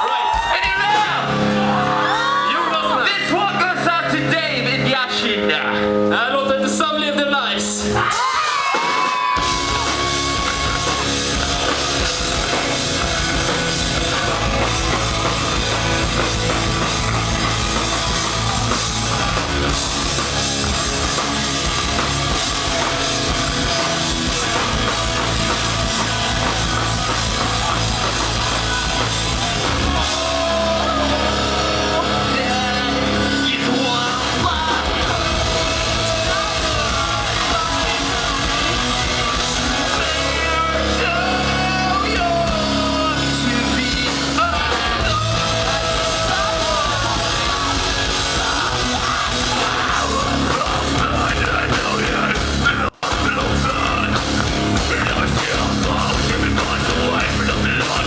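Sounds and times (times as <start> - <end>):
rock band playing loud: 0.0 - 58.0
lead singer singing: 7.8 - 58.0.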